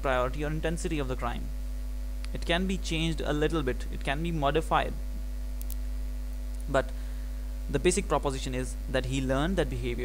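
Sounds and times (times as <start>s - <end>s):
person speaking: 0.0s - 1.6s, 2.3s - 5.0s, 7.7s - 10.0s
low electrical hum: 0.0s - 10.0s.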